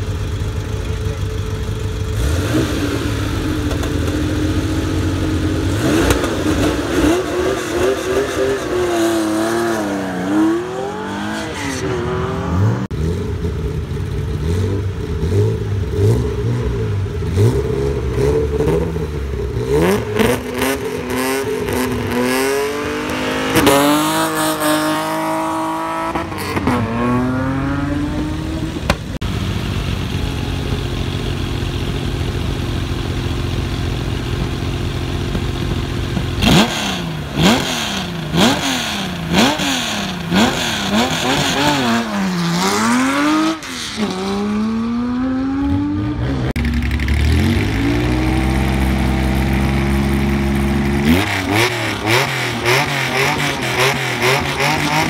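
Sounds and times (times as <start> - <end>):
rally car engine idling and revving: 0.0 - 55.0
car revving hard and launching: 2.1 - 13.6, 14.3 - 55.0.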